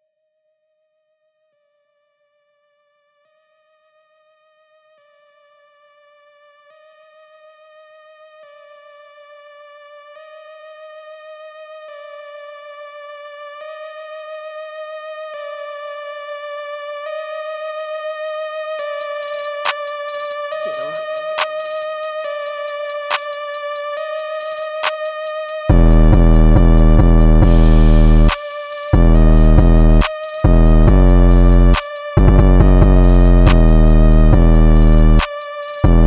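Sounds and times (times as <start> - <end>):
wavering synth lead: 18.8 - 36.0.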